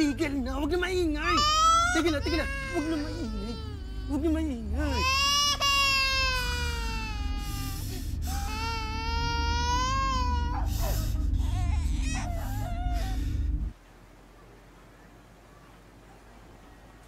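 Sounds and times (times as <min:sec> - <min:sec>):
steady low hum: 0:00.0 - 0:17.0
infant crying: 0:01.2 - 0:13.2.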